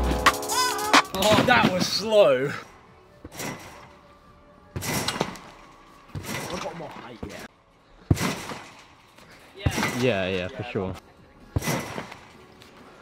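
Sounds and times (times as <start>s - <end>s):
trampoline bounce thumps: 8.1s - 8.9s, 9.6s - 10.2s, 11.5s - 12.3s.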